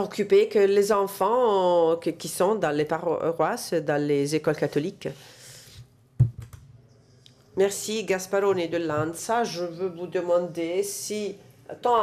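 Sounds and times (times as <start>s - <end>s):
sharp knock on microphone: 6.2s - 6.6s
faint microphone clicks: 6.2s - 7.4s.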